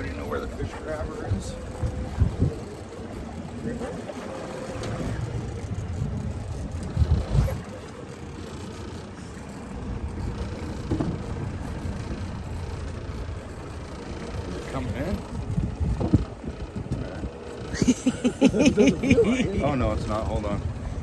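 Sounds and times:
wind on microphone: 0.0s - 4.0s, 4.8s - 7.8s, 14.5s - 17.4s
outboard motor rumbling: 0.0s - 21.0s.

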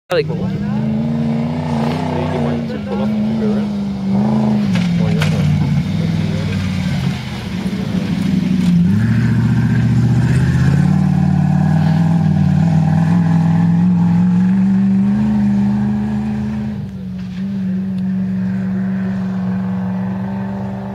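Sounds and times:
race truck engine revving: 0.1s - 20.9s.

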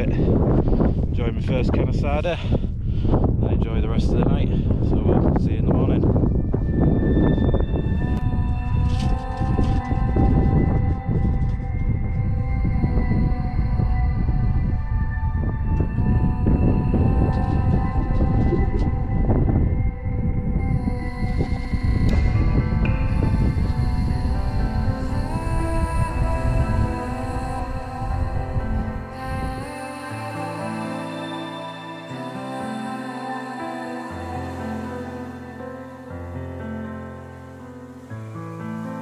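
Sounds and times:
wind buffeting microphone: 0.0s - 29.9s.

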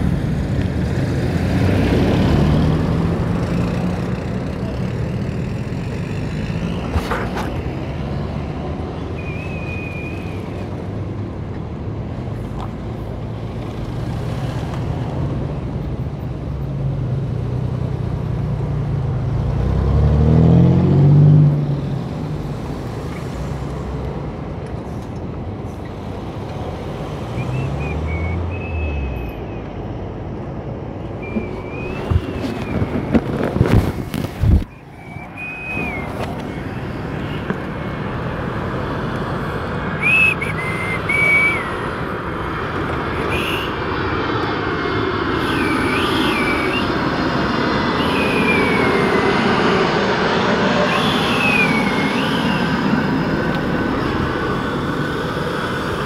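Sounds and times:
heavy vehicle engine passing: 0.0s - 12.4s, 16.7s - 56.0s
road traffic: 0.0s - 56.0s.

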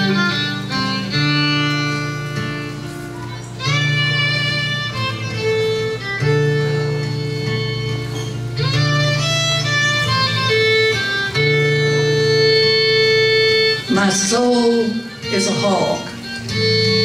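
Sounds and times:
acoustic guitar accompaniment: 0.0s - 17.0s
fiddle slow melody: 0.0s - 17.0s.

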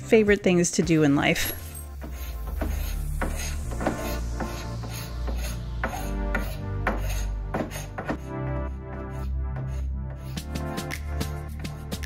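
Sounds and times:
background music with bass: 0.0s - 12.0s
paint scraper scraping wood: 1.5s - 10.4s.

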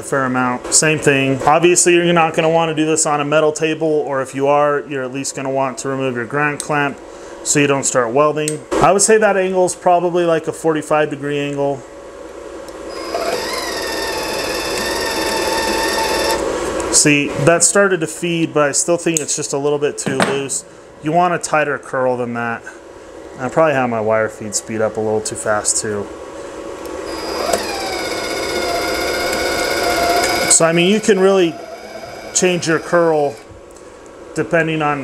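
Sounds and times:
welder wire feed motor whine: 12.8s - 16.9s, 27.0s - 33.6s.

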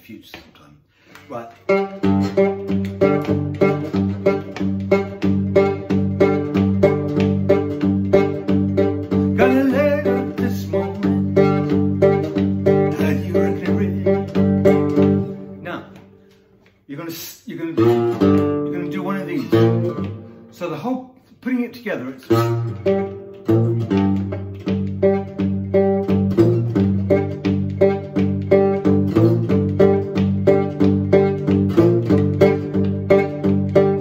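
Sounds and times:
slide guitar blues groove: 1.3s - 16.1s, 16.9s - 20.8s, 21.5s - 34.0s.

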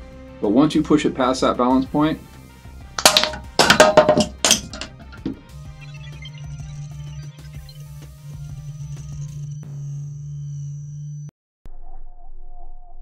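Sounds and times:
magnets clattering: 3.0s - 5.4s.

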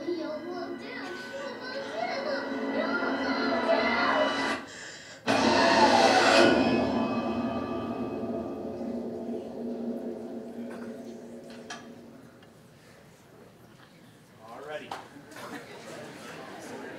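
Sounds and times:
child's voice: 0.0s - 4.4s
loud ringing hit: 0.0s - 4.7s, 5.3s - 12.7s
tense music over loudspeakers: 0.0s - 12.6s.

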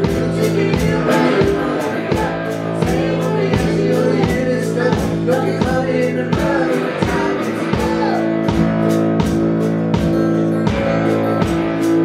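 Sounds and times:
woman singing: 0.0s - 8.4s
acoustic guitar strummed: 0.0s - 12.0s
electric guitar: 0.0s - 12.0s.

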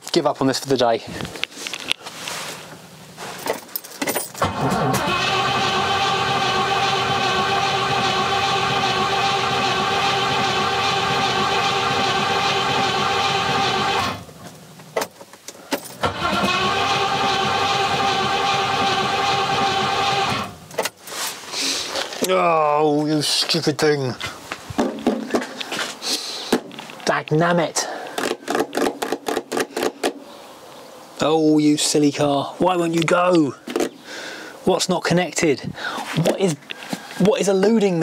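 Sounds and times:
engine cranking on starter motor: 4.4s - 14.3s, 16.0s - 20.8s.

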